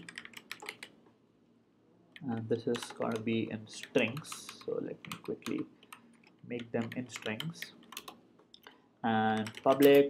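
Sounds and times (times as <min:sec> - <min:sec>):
computer keyboard typing: 0:00.0 - 0:00.9, 0:02.2 - 0:08.7, 0:09.3 - 0:10.0.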